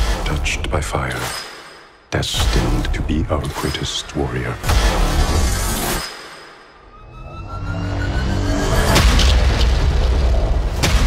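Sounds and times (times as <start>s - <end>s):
sharp hit: 8.0s - 11.0s.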